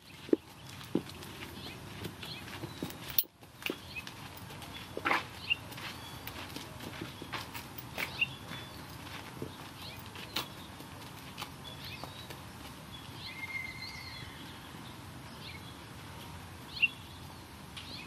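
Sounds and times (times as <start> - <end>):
hooves knocking and scuffing on dirt: 0.0 - 14.6
outdoor background noise: 0.0 - 18.0.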